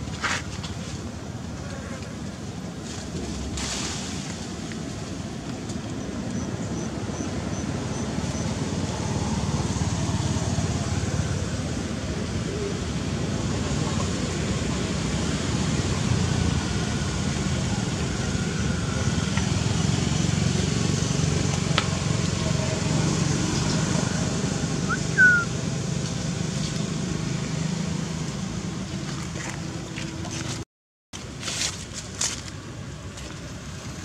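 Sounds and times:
low outdoor rumble: 0:00.0 - 0:30.6.

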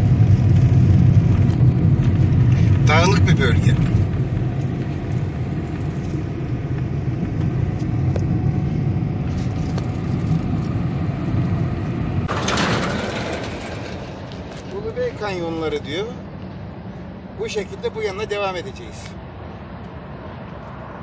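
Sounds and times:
engine and tyre rumble: 0:00.0 - 0:21.0.

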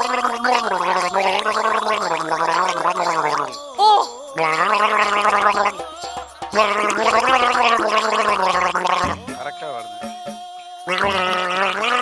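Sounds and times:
man gargling water: 0:00.0 - 0:03.5, 0:04.4 - 0:09.2, 0:10.9 - 0:12.0.

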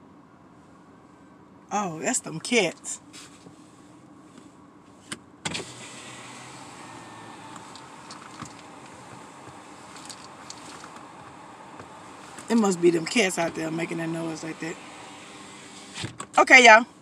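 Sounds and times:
car engine humming: 0:00.8 - 0:17.0
small knocks and rustles: 0:07.5 - 0:12.5.

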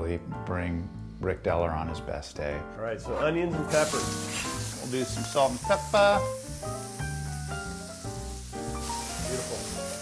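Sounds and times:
music with held chords and bass: 0:03.5 - 0:10.0
vegetables frying in a pan: 0:03.7 - 0:10.0.

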